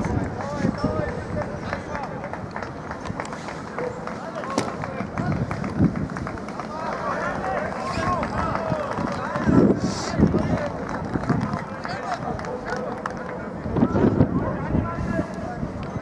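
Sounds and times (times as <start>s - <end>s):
distant players shouting: 6.2s - 9.6s.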